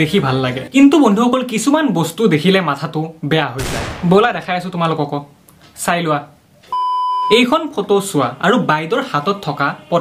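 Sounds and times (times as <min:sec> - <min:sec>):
man talking: 0:00.0 - 0:06.3, 0:07.3 - 0:10.0
electronic censor bleep: 0:06.7 - 0:07.4.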